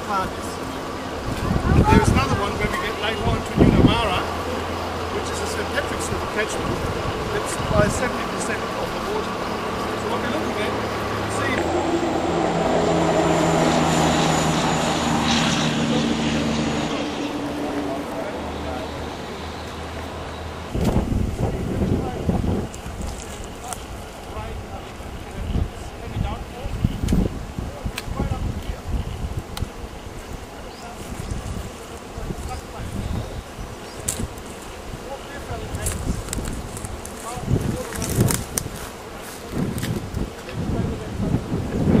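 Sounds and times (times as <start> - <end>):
vehicle engine on gravel road: 0.0 - 25.4, 33.9 - 42.0
wind buffeting microphone: 0.0 - 42.0.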